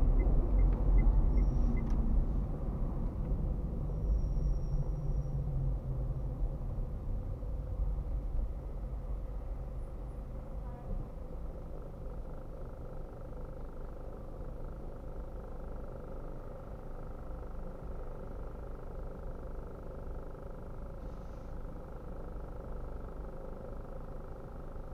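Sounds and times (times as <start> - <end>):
car engine idling: 0.0 - 24.9.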